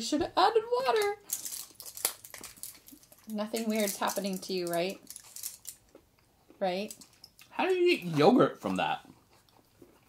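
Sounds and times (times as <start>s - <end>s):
foil packet crinkling: 0.9s - 5.9s.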